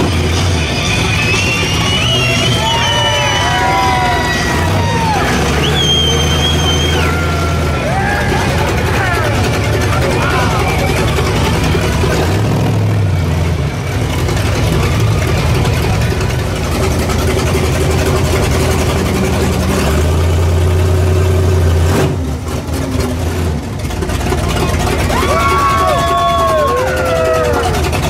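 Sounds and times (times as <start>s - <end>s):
monster truck engine revving: 0.0s - 28.0s.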